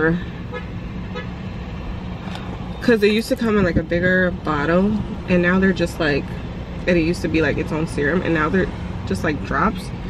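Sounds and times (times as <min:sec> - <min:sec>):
car interior running noise: 0:00.0 - 0:10.0
speech: 0:02.8 - 0:06.3, 0:06.9 - 0:09.9.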